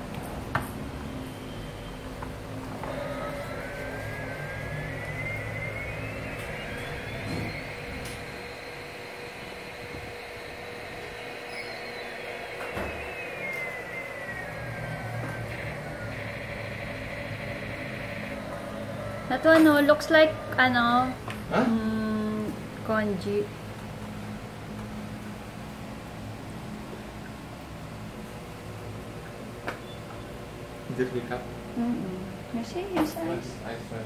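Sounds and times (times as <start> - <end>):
steady low hum: 0.0 - 34.0
electronic engine whine: 0.8 - 23.2.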